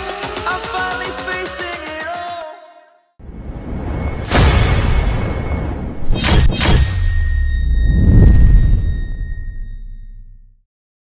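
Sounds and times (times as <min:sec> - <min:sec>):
thin high ringing tones: 0:06.0 - 0:10.4.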